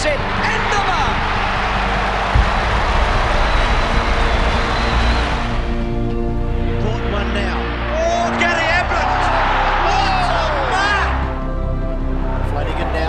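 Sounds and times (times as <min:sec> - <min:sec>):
background music with held notes: 0:00.0 - 0:13.0
crowd roaring: 0:00.0 - 0:13.0
low thump: 0:02.3 - 0:04.7.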